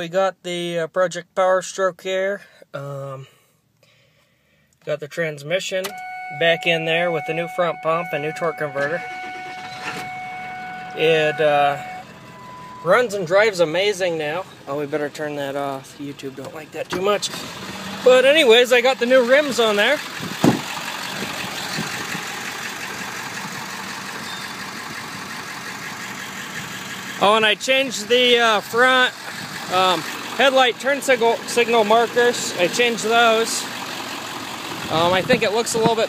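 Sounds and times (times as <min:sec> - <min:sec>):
steady high-pitched tones: 0:05.9 - 0:13.1
diesel engine idling: 0:05.9 - 0:36.0.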